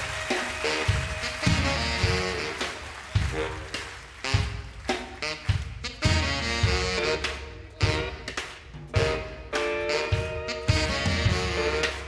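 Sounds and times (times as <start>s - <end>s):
accented horn and drum hits: 0.0s - 12.0s
brass band playing live: 0.0s - 12.0s.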